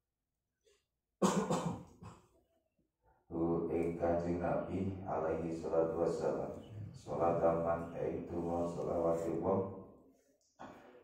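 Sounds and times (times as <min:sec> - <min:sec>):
man coughing: 0:01.2 - 0:02.2
person reading aloud: 0:03.3 - 0:09.9.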